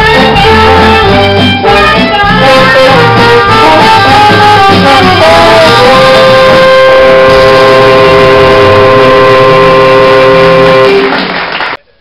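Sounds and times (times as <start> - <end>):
jazz band chord: 0.0 - 11.2.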